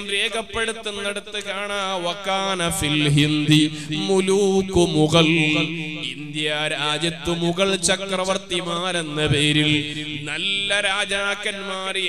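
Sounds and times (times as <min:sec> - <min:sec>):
man chanting: 0:00.0 - 0:12.0.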